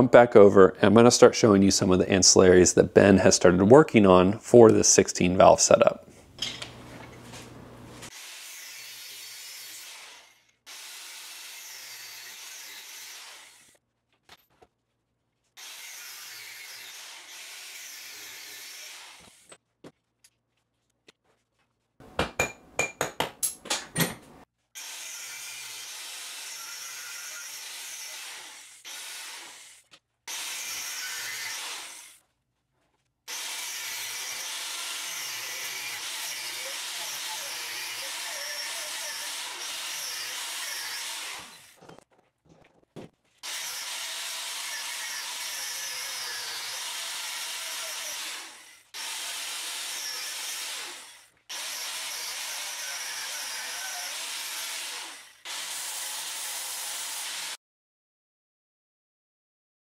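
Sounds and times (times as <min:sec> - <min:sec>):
angle grinder grinding metal: 0:06.4 - 0:13.8, 0:15.6 - 0:19.6, 0:24.8 - 0:32.2, 0:33.3 - 0:42.0, 0:43.4 - 0:57.6.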